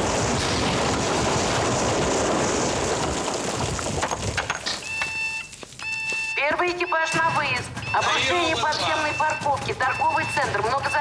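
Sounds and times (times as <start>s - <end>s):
rushing rumble of debris: 0.0s - 5.8s
high electronic beep tone: 4.8s - 11.0s.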